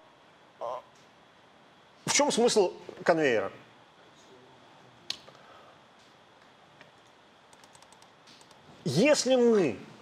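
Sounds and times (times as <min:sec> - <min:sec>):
computer key clicks: 0:07.5 - 0:08.6.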